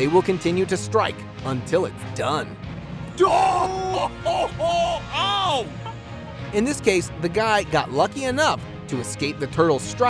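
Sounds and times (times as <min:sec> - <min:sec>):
man yelling in pain: 0:03.2 - 0:05.9.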